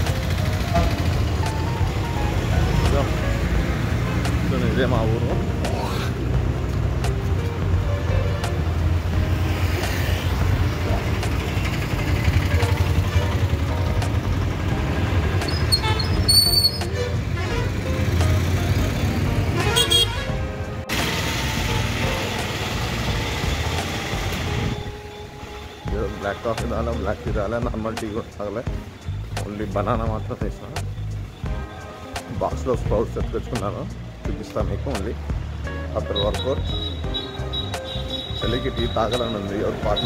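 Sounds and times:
street traffic rumble: 0.0 - 40.0
vehicle horn tooting: 15.5 - 17.8, 19.6 - 20.4, 36.0 - 40.0.

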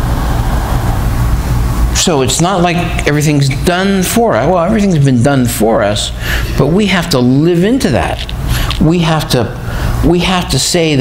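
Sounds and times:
loud rushing noise: 0.0 - 3.4
low hum: 0.0 - 6.8.

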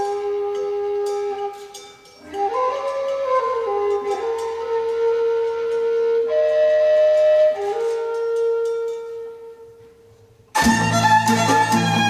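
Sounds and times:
wooden flute playing folk tune: 0.0 - 12.0.

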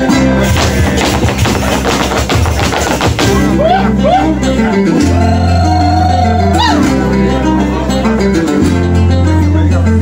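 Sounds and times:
folk guitar music over loudspeaker: 0.0 - 10.0
dance footwork stamping on wood: 0.5 - 3.4.

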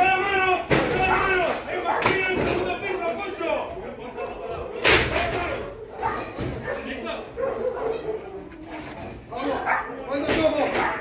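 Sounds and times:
people's voices: 0.0 - 11.0
dog barking and whining: 5.8 - 8.4.

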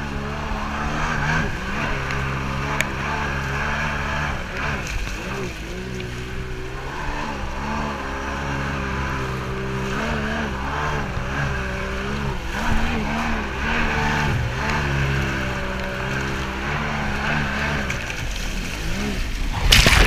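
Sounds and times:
jet ski engine running: 0.0 - 20.0
wind: 0.0 - 20.0.

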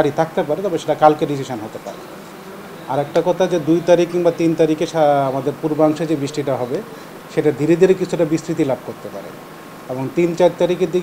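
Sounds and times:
man speaking: 0.0 - 2.0, 2.8 - 11.0
steady background noise: 0.0 - 11.0.

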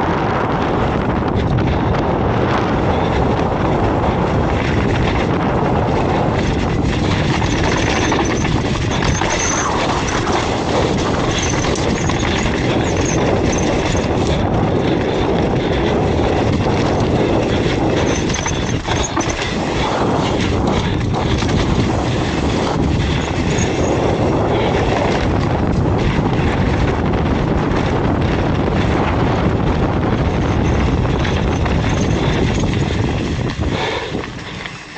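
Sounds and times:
bike chain and frame rattling: 0.1 - 34.9
tyres rolling over dirt: 3.0 - 27.2, 27.8 - 34.9.

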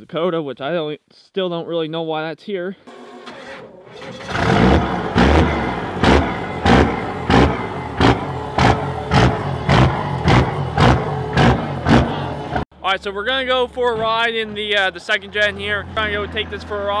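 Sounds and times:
diesel engine starting and running: 2.9 - 17.0.

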